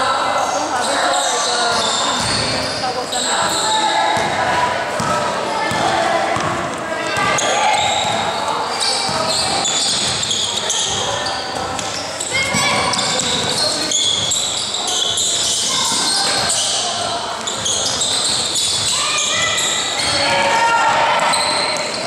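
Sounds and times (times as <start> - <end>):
sneakers squeaking: 0.3 - 22.0
basketball bouncing on court: 1.7 - 2.8, 3.4 - 14.4.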